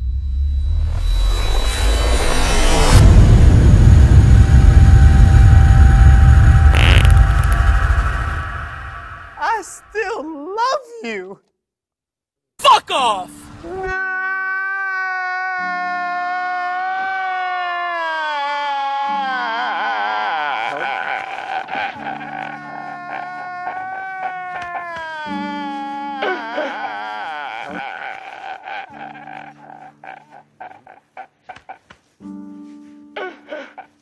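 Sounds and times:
steady low tone: 0:00.0 - 0:09.4
person wailing high note: 0:04.5 - 0:10.2, 0:13.7 - 0:30.0
man laughing hard: 0:19.8 - 0:32.0.

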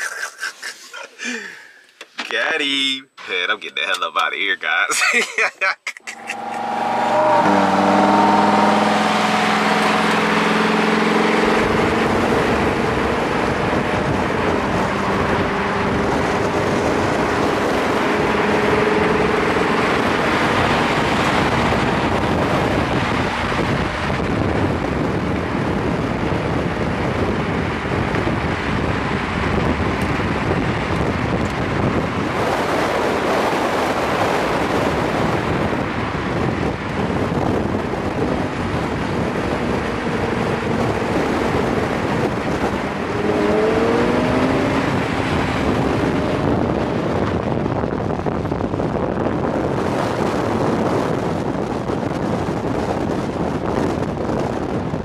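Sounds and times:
road and wind noise: 0:00.0 - 0:55.0
car engine running: 0:06.0 - 0:55.0.

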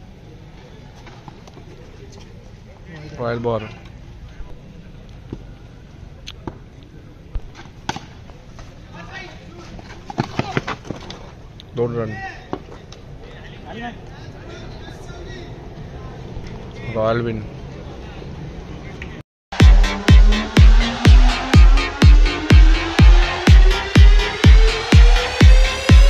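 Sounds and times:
players shouting: 0:19.6 - 0:26.0.

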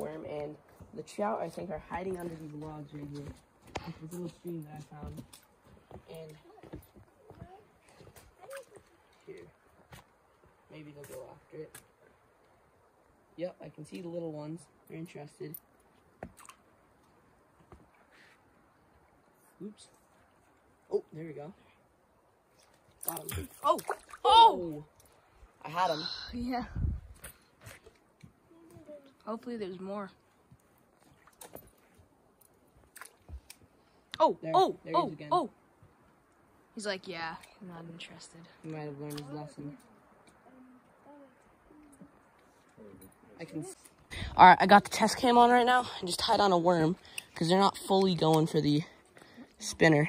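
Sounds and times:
small stream flowing: 0:00.0 - 0:50.0.

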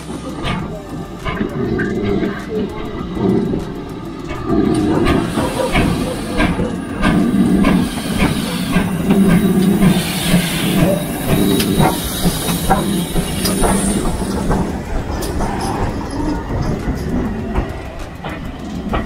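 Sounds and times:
steam hissing: 0:00.0 - 0:19.0
steam locomotive exhaust beats: 0:00.0 - 0:19.0
wheels knocking over rail joints: 0:00.0 - 0:19.0.

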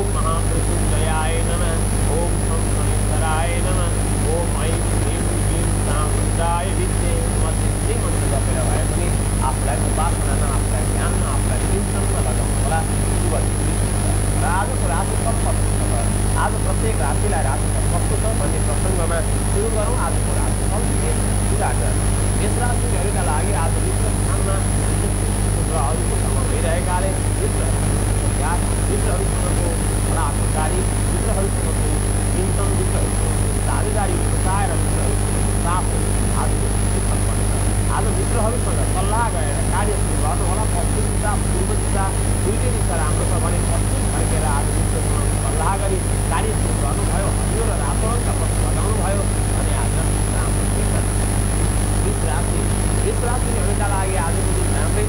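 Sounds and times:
faint high whine: 0:00.0 - 0:55.0
loud steady low hum: 0:00.0 - 0:55.0
man talking: 0:00.0 - 0:55.0.

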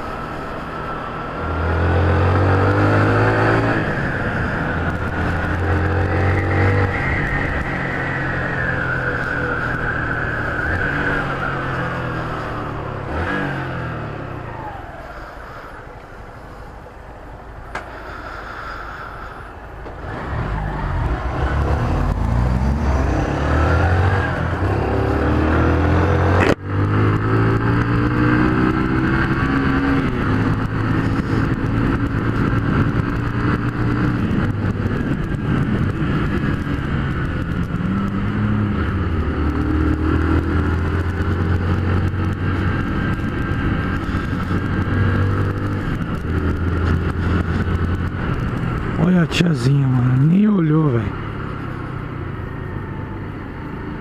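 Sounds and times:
motorcycle engine revving through gears: 0:00.0 - 0:15.8, 0:19.8 - 0:54.0.

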